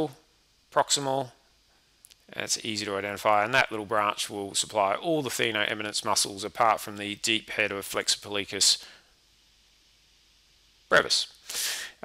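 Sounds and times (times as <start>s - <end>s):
faint hiss: 0.0s - 12.0s
man speaking: 0.8s - 1.4s, 2.3s - 9.0s, 10.9s - 12.0s.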